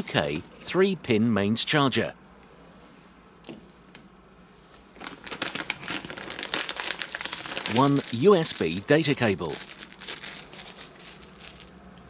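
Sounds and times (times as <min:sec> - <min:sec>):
plastic bag crinkling: 0:04.9 - 0:11.9.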